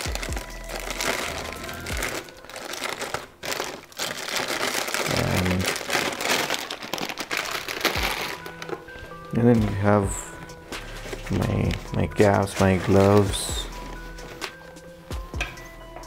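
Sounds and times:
plastic packets crinkling: 0.0s - 14.8s.

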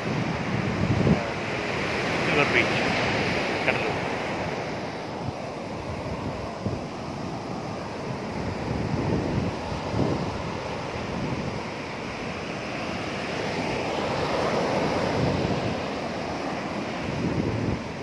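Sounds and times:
surf breaking on sand: 0.0s - 18.0s.

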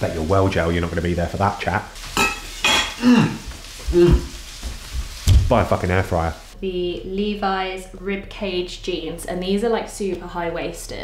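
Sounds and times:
steady hiss: 0.0s - 6.6s
man making wordless sounds: 3.0s - 4.3s.

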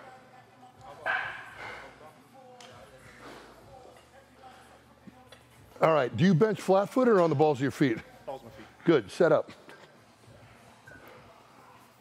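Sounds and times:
faint voices in a gym: 0.0s - 12.0s.

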